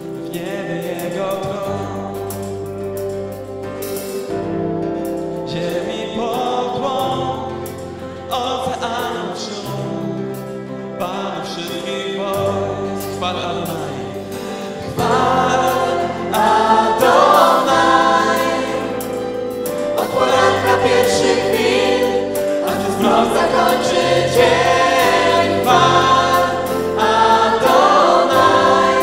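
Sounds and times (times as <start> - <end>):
acoustic and electric guitars: 0.0 - 29.0
woman and man singing: 20.0 - 29.0.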